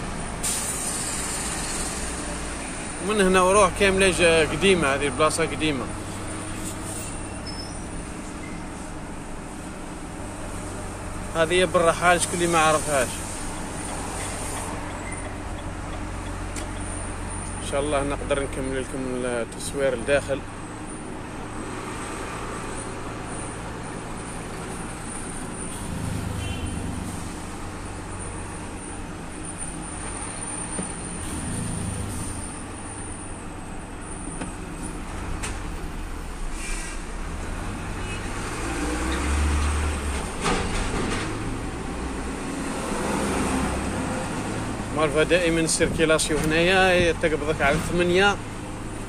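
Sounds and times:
diesel truck engine droning: 0.0 - 49.0
road and traffic noise: 0.0 - 49.0.

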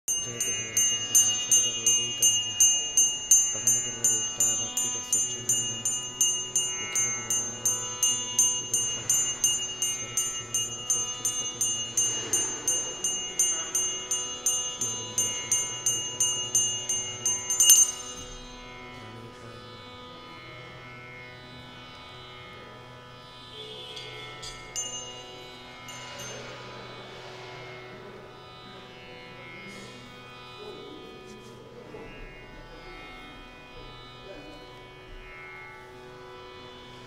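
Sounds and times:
small metal hand bell ringing: 0.0 - 18.7, 24.0 - 26.7.

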